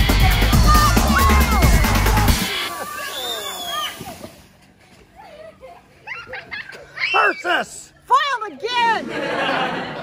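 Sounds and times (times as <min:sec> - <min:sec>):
children shouting and squealing: 0:00.0 - 0:04.4, 0:05.0 - 0:08.0.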